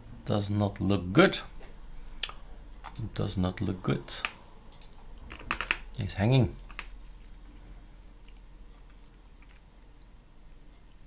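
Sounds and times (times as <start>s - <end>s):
computer mouse clicks: 4.2s - 5.8s.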